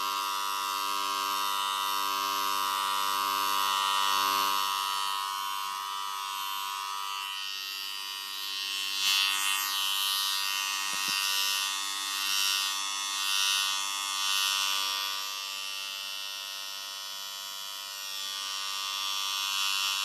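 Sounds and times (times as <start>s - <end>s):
electric hair clipper buzzing: 0.0s - 20.0s.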